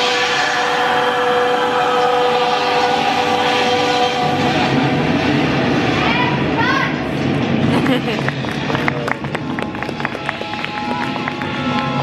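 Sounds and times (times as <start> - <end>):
held horn-like chord: 0.0 - 5.3
low rumble: 0.0 - 12.0.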